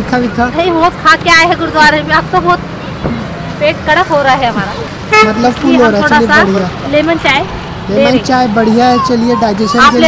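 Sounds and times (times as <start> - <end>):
low hum of traffic: 0.0 - 10.0
woman speaking: 3.6 - 4.9, 5.6 - 8.2.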